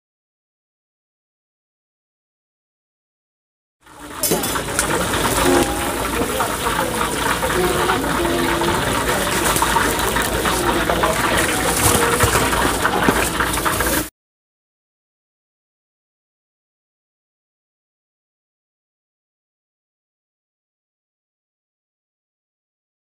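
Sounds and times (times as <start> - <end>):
chatter: 3.8 - 14.1
oil sizzling and crackling: 3.8 - 14.1.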